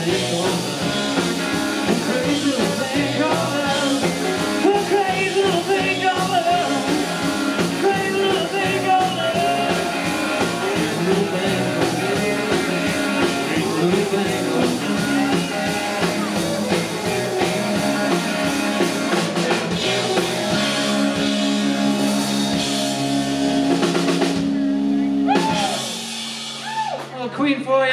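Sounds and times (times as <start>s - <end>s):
drum kit: 0.0s - 27.3s
electric guitars: 0.0s - 27.3s
bass guitar: 0.0s - 27.9s.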